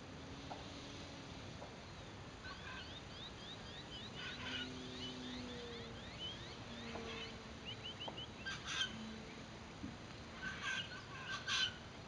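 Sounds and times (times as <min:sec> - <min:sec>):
birds chirping: 0:00.0 - 0:11.9
distant model plane motor: 0:00.0 - 0:12.0.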